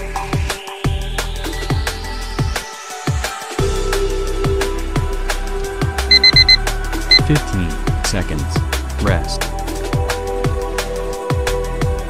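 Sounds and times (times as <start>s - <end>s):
drum and bass music: 0.0s - 12.0s
timer beeps: 6.1s - 7.3s.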